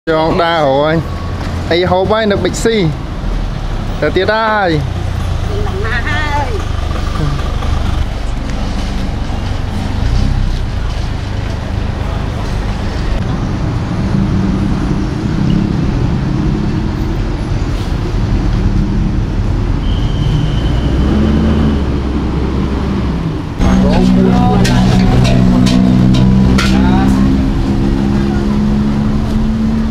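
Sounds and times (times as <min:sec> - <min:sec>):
vehicle engine drone: 0:00.1 - 0:29.9
people's voices: 0:03.9 - 0:10.2, 0:23.6 - 0:29.1.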